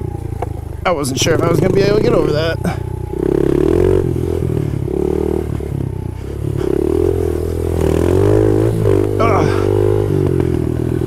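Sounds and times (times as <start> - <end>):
small motorbike engine running: 0.0 - 11.0.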